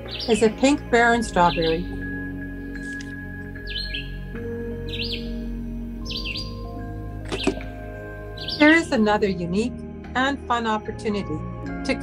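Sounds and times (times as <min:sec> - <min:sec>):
bird chirping: 0:00.0 - 0:09.2
soft background music: 0:00.0 - 0:12.0.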